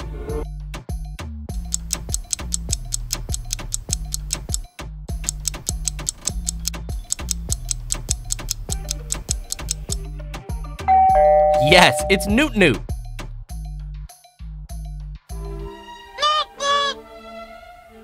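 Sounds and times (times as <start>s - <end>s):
rapid even ticking: 1.6s - 4.6s, 5.2s - 10.0s.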